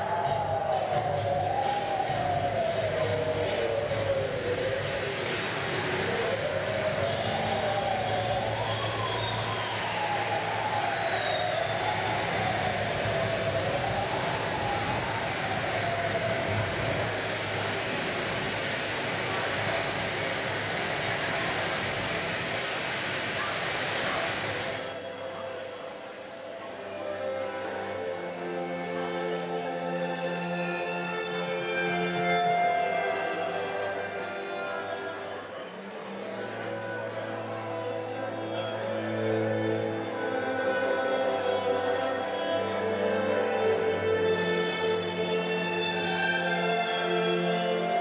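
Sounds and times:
steady rushing noise: 0.0 - 29.2.

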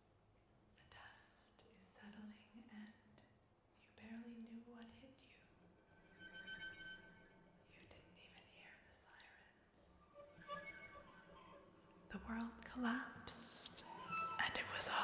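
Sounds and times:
woman whispering: 0.8 - 3.2, 3.8 - 5.6, 7.7 - 9.9, 12.1 - 15.0
faint sustained tone: 4.0 - 15.0.

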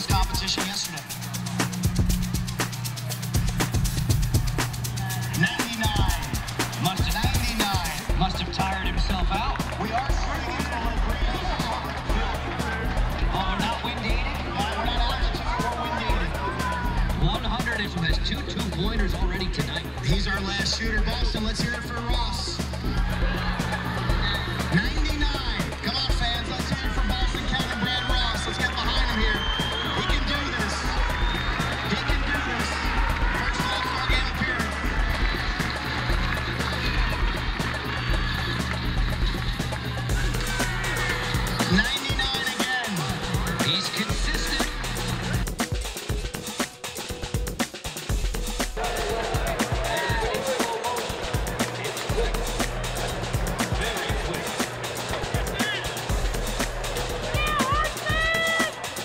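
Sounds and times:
background music with steady beat: 0.0 - 59.0.

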